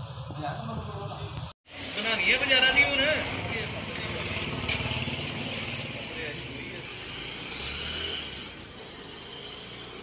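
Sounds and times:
small engine running: 3.2s - 10.0s.

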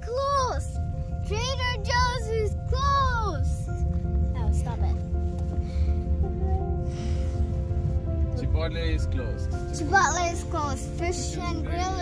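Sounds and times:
car rumble: 0.0s - 12.0s.

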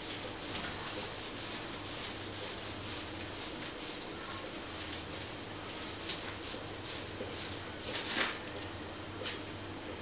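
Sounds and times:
hand pad rubbing plaster wall: 0.0s - 8.1s.

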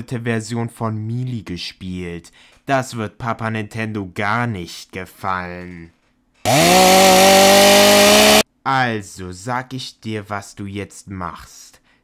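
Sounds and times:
chainsaw running at full throttle: 6.4s - 8.4s.

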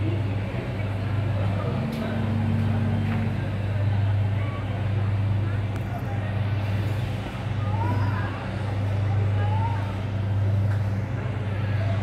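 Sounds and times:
faint distant voices: 0.0s - 12.0s
steady low hum: 0.0s - 12.0s
street noise: 0.0s - 12.0s.

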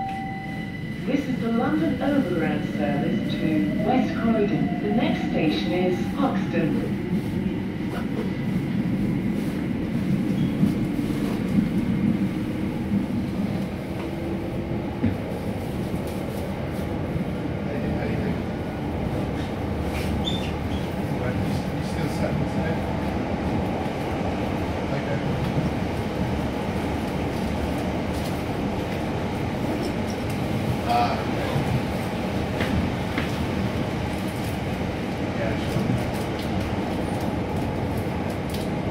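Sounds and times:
train wheels rumbling on track: 0.0s - 38.9s.

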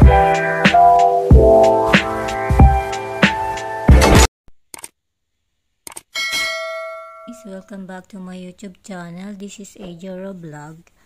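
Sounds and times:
mouse clicks: 5.9s - 6.1s
bright bell chime: 6.2s - 7.7s.

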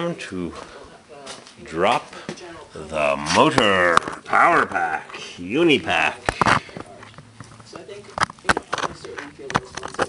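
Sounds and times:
hard objects clicking and knocking: 5.9s - 10.0s.

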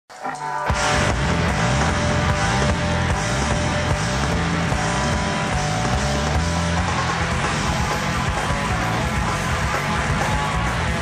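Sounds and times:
distorted electric guitar riff: 0.1s - 11.0s
rock band playing live: 0.1s - 11.0s.

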